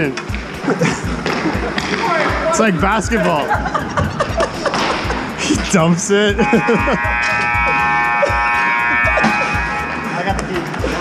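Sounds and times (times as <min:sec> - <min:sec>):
background music with bass beat: 0:00.0 - 0:11.0
scoreboard horn buzzing: 0:05.7 - 0:11.0.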